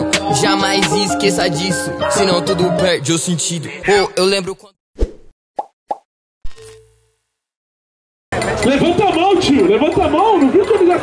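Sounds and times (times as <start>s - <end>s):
short electronic blips: 6.5s - 7.2s.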